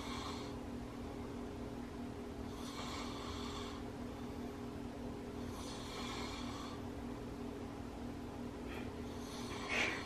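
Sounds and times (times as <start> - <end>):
steady low hum: 0.0 - 10.0
man snoring: 2.6 - 3.8, 5.5 - 6.8.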